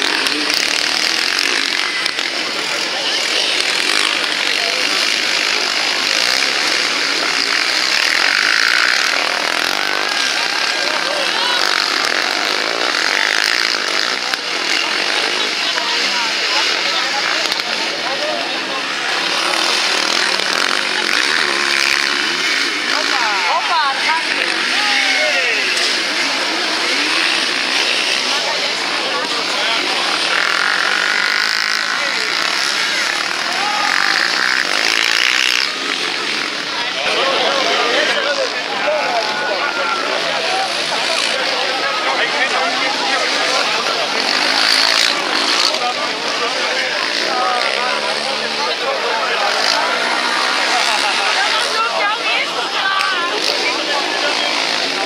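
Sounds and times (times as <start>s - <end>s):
quad bike engines revving: 0.0s - 55.0s.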